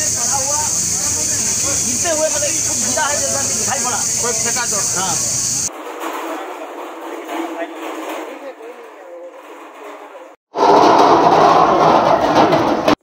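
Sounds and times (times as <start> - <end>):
loud high-pitched hiss: 0.0 - 5.7
people talking: 0.0 - 10.4.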